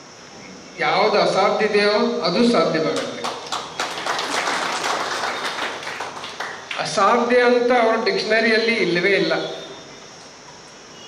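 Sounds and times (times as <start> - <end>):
audience clapping: 3.0 - 7.0.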